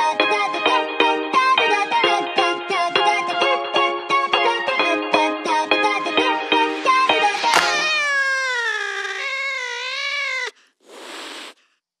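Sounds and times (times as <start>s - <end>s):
burst of hissing noise: 6.7s - 11.6s
cat meow sliding down in pitch: 7.4s - 11.6s.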